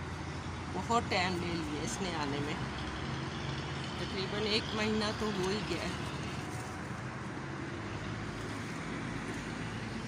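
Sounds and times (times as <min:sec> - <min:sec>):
woman speaking: 0:00.8 - 0:02.7, 0:04.0 - 0:06.0.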